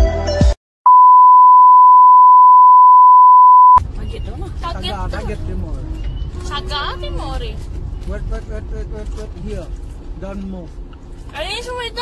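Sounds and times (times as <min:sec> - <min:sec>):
high electronic beep: 0:00.9 - 0:03.8.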